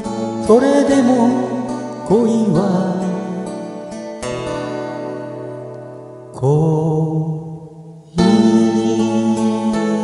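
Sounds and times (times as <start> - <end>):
acoustic guitar chords strummed: 0.0 - 10.0.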